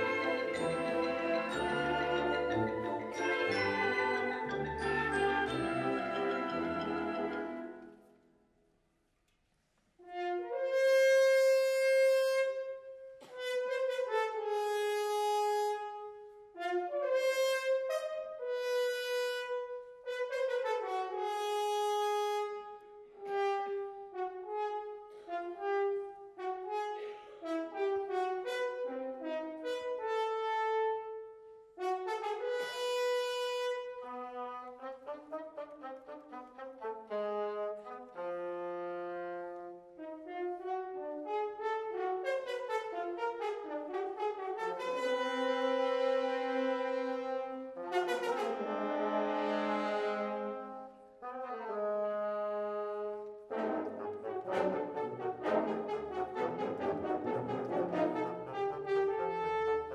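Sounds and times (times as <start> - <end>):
wind band playing film score: 0.0 - 8.0, 10.0 - 59.9.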